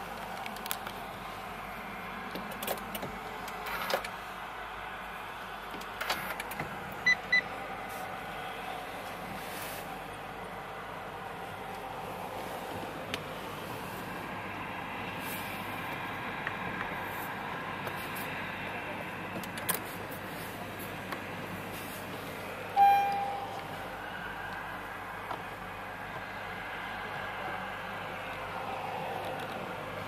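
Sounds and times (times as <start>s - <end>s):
steady background noise: 0.0s - 30.0s
short electronic beep: 22.8s - 23.6s.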